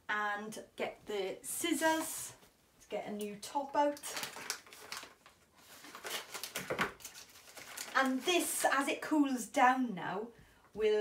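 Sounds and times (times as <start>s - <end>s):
plastic packaging crinkling: 3.9s - 8.6s.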